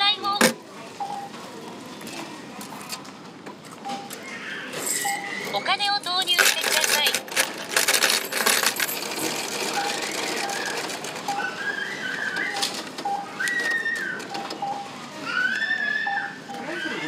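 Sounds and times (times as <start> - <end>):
coins clattering and jingling: 4.7 - 5.4, 6.2 - 11.2.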